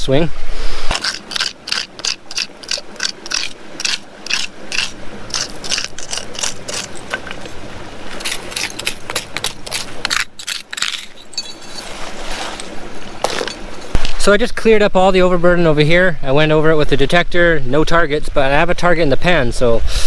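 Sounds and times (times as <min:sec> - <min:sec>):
hand tool scraping gravel off rock: 0:00.9 - 0:14.0.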